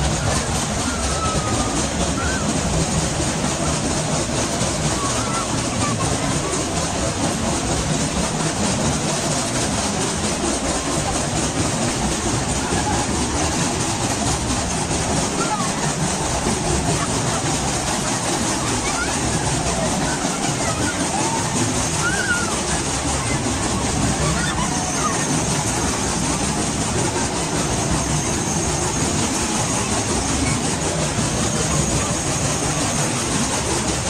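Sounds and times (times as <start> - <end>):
babble of voices: 0.0 - 34.0
spinning amusement ride: 0.0 - 34.0.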